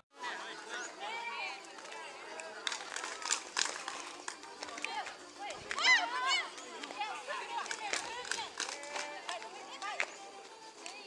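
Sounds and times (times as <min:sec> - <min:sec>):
group of people calling out: 0:05.7 - 0:06.6.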